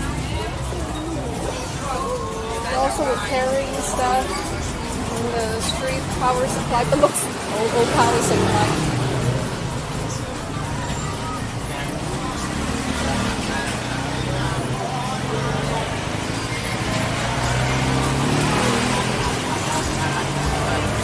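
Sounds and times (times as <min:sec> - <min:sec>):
indistinct voices: 0:00.0 - 0:21.0
road traffic: 0:00.0 - 0:21.0.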